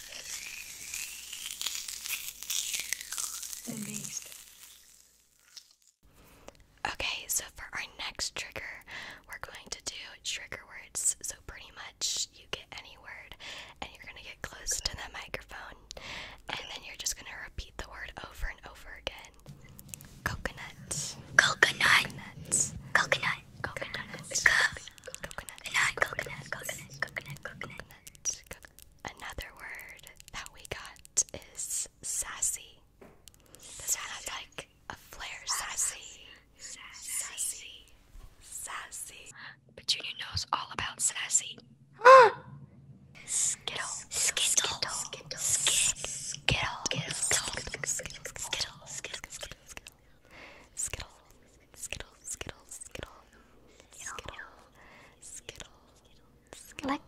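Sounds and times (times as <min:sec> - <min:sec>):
whispering close to microphone: 0:03.7 - 0:04.3, 0:06.9 - 0:15.9, 0:16.5 - 0:32.8, 0:33.6 - 0:41.6, 0:43.2 - 0:50.2, 0:50.8 - 0:57.0.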